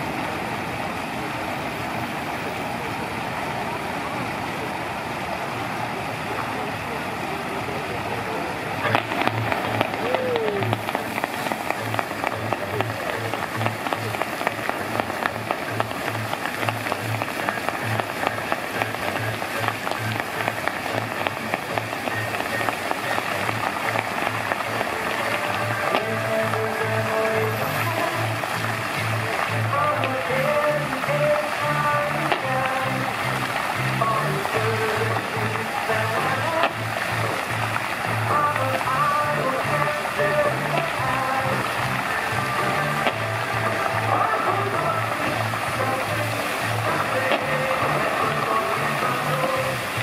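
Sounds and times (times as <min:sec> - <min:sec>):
fountain water splashing: 0:00.0 - 0:50.0
voices in background: 0:00.0 - 0:50.0
music with steady bass beat: 0:08.8 - 0:50.0.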